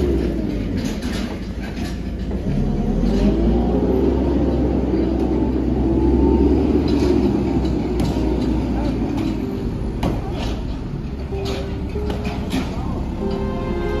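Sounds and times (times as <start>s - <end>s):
heavy engine rumbling: 0.0s - 14.0s
faint voices: 7.2s - 14.0s.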